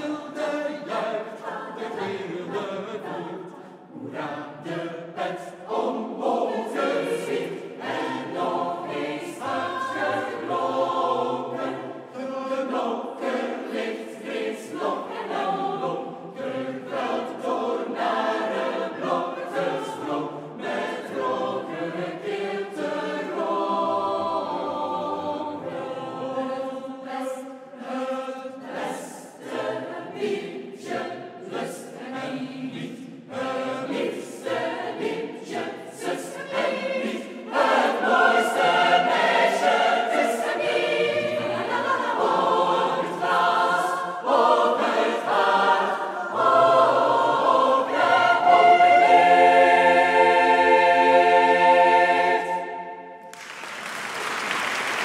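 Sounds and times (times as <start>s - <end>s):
mixed choir singing folk song: 0.0s - 53.3s.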